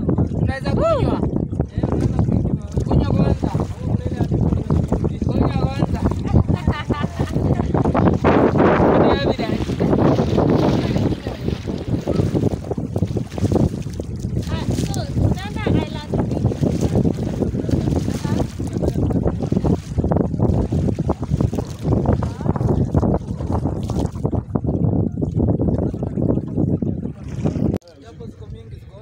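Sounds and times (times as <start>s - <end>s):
boat motor running: 0.0s - 29.0s
water rushing along hull: 0.0s - 29.0s
wind buffeting microphone: 0.0s - 29.0s.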